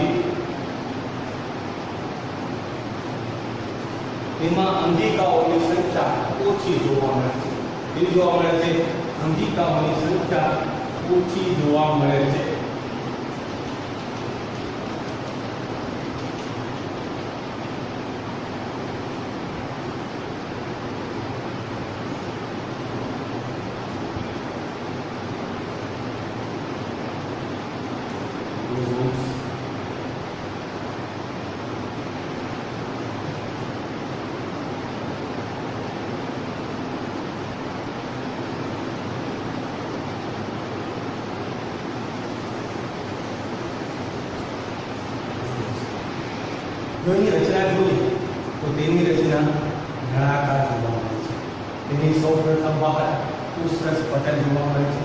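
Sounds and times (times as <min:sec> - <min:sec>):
background recording hiss: 0:00.0 - 0:55.0.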